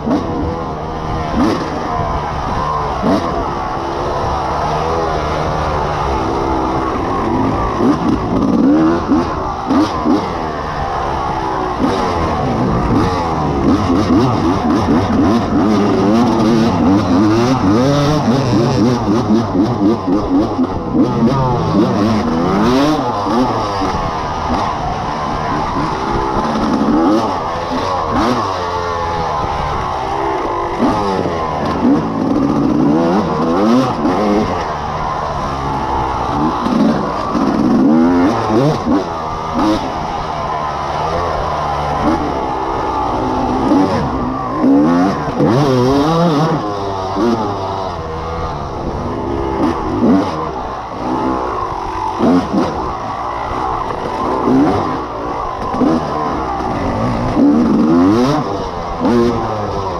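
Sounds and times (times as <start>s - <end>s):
dirt bike engine revving: 0.0s - 59.9s.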